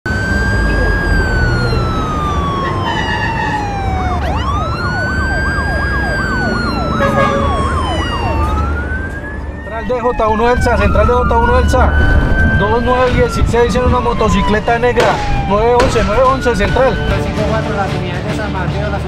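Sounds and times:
police sirens wailing: 0.0 - 18.2
siren yelp: 0.1 - 17.6.

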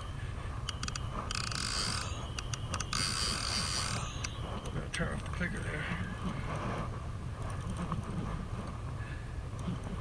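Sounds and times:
steady low rumble: 0.0 - 10.0
fishing reel being cranked: 1.3 - 2.2, 2.9 - 4.2.

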